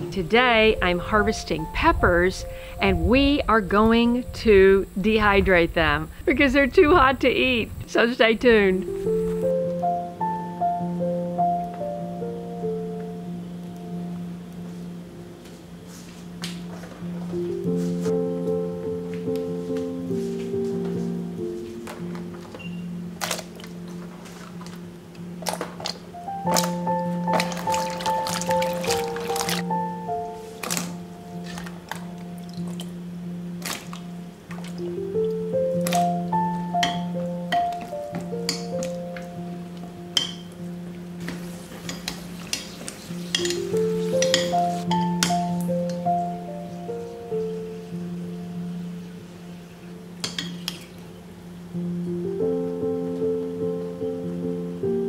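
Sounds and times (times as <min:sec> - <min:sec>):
background music with low notes: 0:00.0 - 0:55.0
peppers plopping into water: 0:23.2 - 0:23.8, 0:25.4 - 0:29.6, 0:30.6 - 0:32.9, 0:33.6 - 0:34.9
metal skimmer clinking on cookware: 0:43.3 - 0:43.6, 0:50.2 - 0:50.8.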